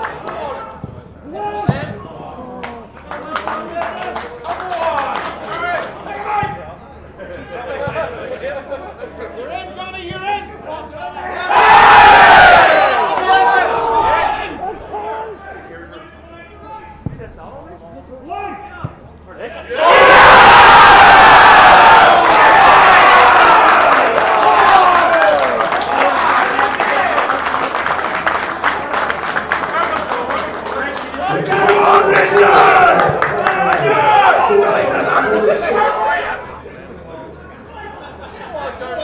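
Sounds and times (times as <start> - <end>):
football crowd roaring and cheering: 0.0 - 17.2, 18.5 - 39.0.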